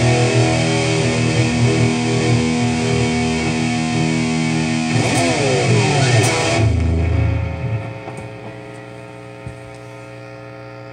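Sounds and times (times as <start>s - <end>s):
distorted electric guitar chord: 0.0s - 9.5s
amplifier hum: 0.0s - 10.9s.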